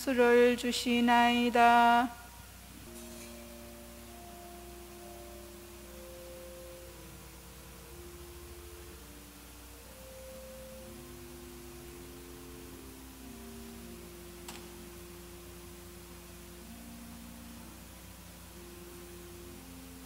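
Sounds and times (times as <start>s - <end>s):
soft organ music: 1.4s - 20.0s.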